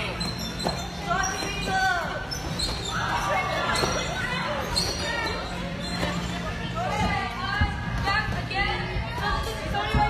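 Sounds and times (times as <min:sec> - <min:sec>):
thumps of bouncing on trampolines: 0:00.0 - 0:10.0.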